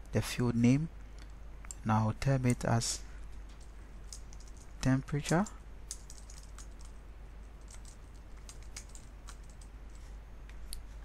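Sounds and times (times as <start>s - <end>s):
steady low hum: 0.0s - 11.0s
keyboard typing: 3.5s - 4.7s, 5.4s - 10.0s.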